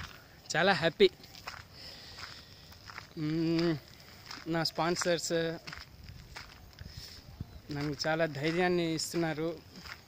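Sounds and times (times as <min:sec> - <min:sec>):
footsteps on unpaved path: 0:00.0 - 0:10.0
person speaking: 0:03.0 - 0:05.7, 0:07.2 - 0:10.0.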